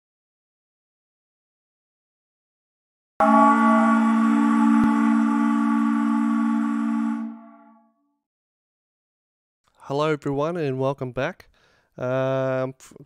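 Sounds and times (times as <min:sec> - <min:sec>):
ringing chord musical sting: 0:03.2 - 0:07.9.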